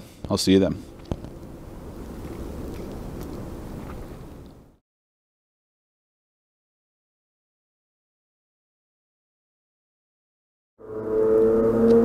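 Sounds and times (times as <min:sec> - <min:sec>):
low outdoor background rumble: 0:00.0 - 0:04.8.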